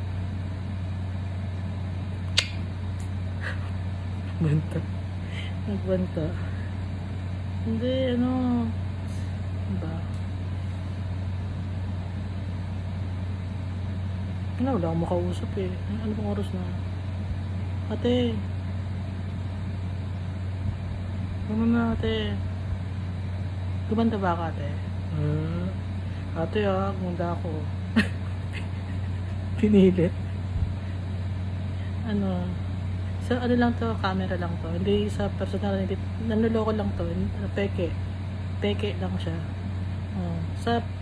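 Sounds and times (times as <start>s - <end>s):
steady low hum: 0.0s - 41.0s.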